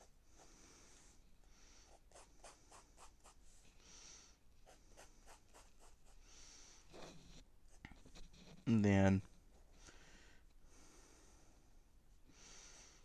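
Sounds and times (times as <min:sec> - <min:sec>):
pencil scratching on paper: 0:00.0 - 0:00.5, 0:01.8 - 0:03.7, 0:04.6 - 0:06.2, 0:06.8 - 0:08.8.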